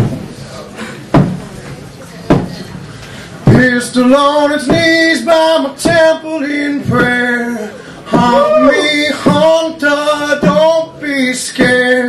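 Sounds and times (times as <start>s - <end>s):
heavy low drum thumps: 0.0s - 0.4s, 1.1s - 1.6s, 2.2s - 2.8s, 3.4s - 5.2s, 6.8s - 10.9s
person singing: 3.5s - 12.0s.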